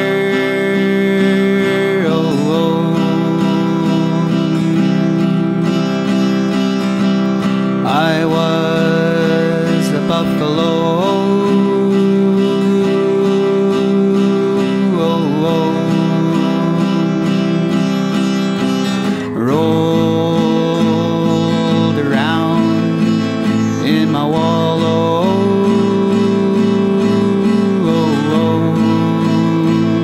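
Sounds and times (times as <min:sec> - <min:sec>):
acoustic guitar with sliding notes: 0:00.0 - 0:30.0.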